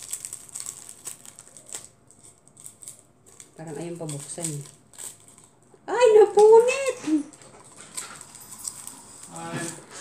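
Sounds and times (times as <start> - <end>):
packaging crinkling and tearing: 0.0 - 10.0.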